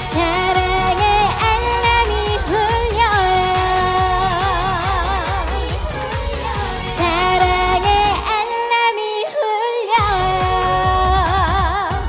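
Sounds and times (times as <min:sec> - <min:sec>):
backing band playing pop: 0:00.0 - 0:08.4, 0:10.0 - 0:12.0
woman singing with vibrato: 0:00.0 - 0:12.0.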